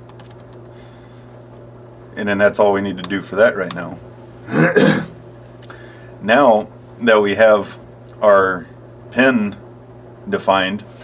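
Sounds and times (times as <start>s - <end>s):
man clearing throat: 4.4s - 5.2s.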